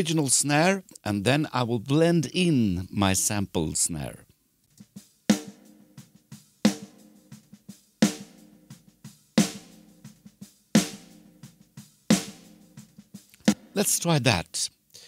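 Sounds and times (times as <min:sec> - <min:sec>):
drum kit playing: 0:04.8 - 0:14.3.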